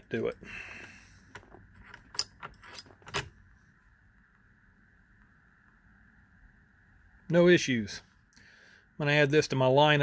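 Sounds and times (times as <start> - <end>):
faint steady high hum: 0.0 - 10.0.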